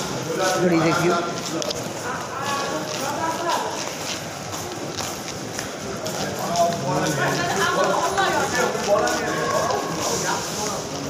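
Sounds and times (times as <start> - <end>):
footsteps on tiled floor: 0.0 - 11.0
murmur of voices: 0.0 - 11.0.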